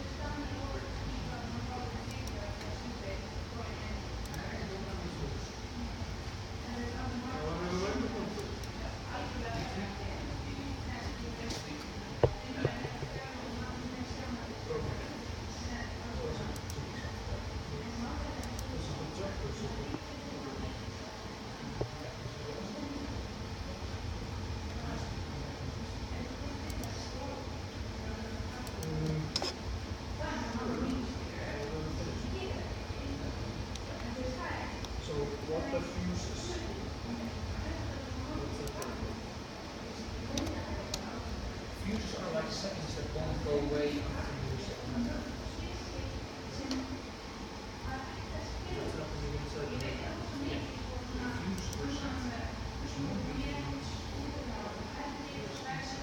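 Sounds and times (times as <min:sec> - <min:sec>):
low room noise: 0:00.0 - 0:56.0.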